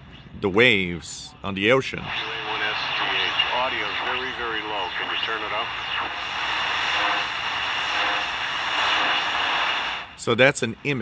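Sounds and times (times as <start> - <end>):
radio static hiss: 1.2 - 11.0.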